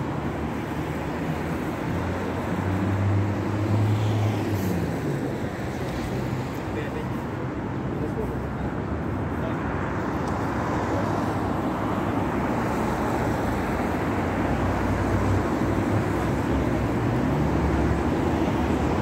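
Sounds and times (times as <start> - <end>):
cars passing: 0.0 - 19.0.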